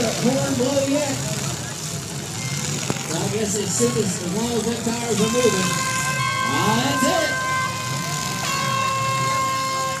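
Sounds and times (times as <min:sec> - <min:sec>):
horn blowing long blast: 0:05.0 - 0:10.0
lower horn tone: 0:05.2 - 0:10.0.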